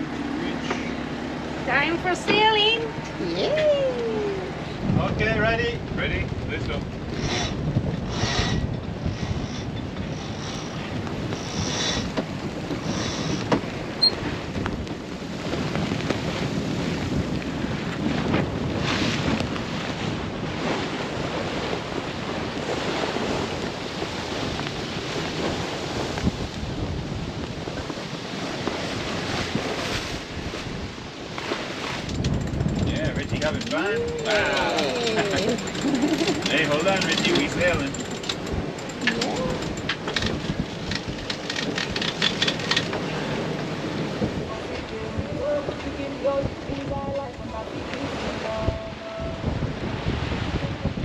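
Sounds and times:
water rushing along hull: 0.0s - 51.0s
wind buffeting microphone: 0.0s - 51.0s.

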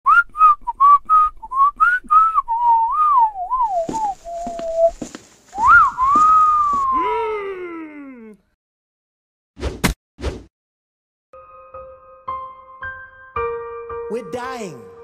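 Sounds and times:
person whistling: 0.1s - 5.0s, 5.6s - 7.9s
wolf whistle: 0.1s - 5.0s, 5.6s - 7.1s.

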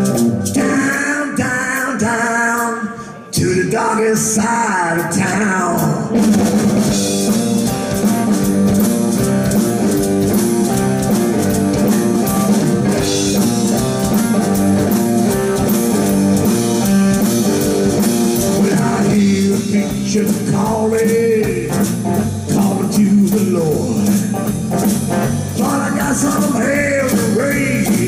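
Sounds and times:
drum kit: 0.0s - 2.8s, 3.4s - 28.0s
electric guitar: 0.0s - 28.0s.

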